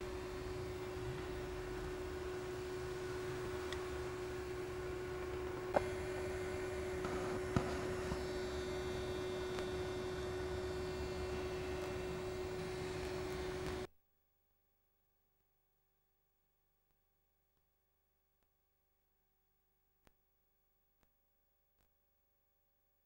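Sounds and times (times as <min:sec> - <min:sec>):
steady electrical hum: 0:00.0 - 0:13.9.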